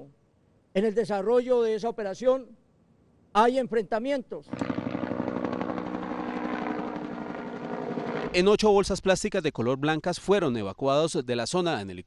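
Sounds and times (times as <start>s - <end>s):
helicopter flying overhead: 4.5s - 8.4s.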